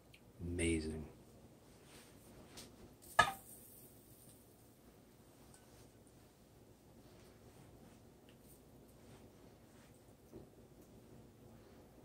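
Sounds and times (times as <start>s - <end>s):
bowl clinking on frying pan: 3.0s - 3.6s.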